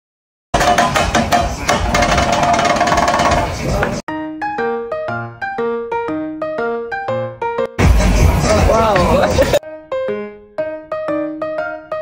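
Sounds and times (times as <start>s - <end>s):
restaurant noise: 0.6s - 4.0s
melodic music: 4.0s - 12.0s.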